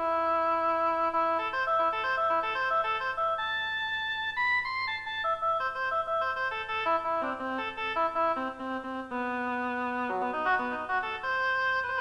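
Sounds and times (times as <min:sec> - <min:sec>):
electronic keyboard melody: 0:00.0 - 0:12.0.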